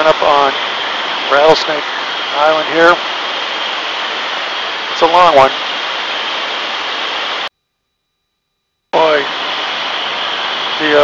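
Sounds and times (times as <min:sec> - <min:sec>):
aircraft engine: 0:00.0 - 0:07.5
wind through open windows: 0:00.0 - 0:07.5, 0:08.9 - 0:11.0.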